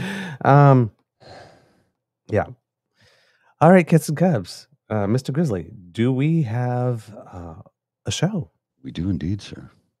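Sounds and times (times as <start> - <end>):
man sighing: 0.0 - 0.7
man speaking: 0.0 - 0.9, 2.3 - 2.6, 3.6 - 9.8.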